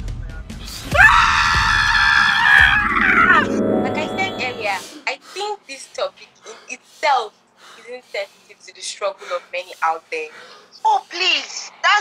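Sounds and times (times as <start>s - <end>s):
person screaming: 0.9s - 3.4s
background music: 1.0s - 5.1s.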